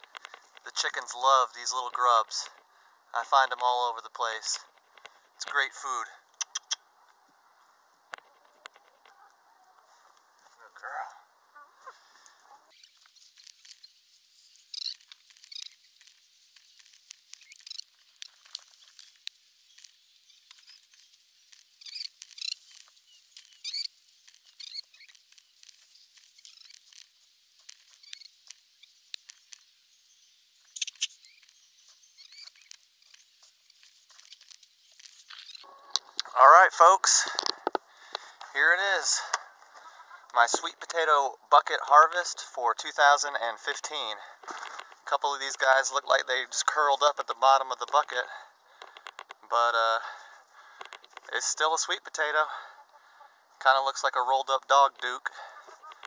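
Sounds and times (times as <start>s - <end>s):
rustling in pine straw: 11.6s - 35.7s.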